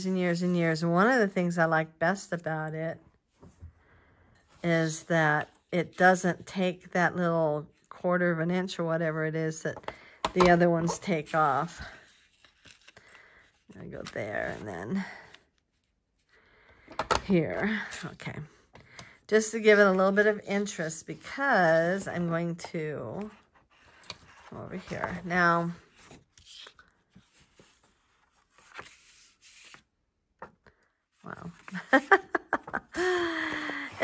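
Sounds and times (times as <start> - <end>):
woman speaking: 0.0 - 3.0, 4.6 - 12.0, 13.8 - 15.2, 17.2 - 18.6, 19.3 - 23.4, 24.5 - 25.8, 31.2 - 32.2
paper handling: 10.8 - 14.7, 23.2 - 30.6.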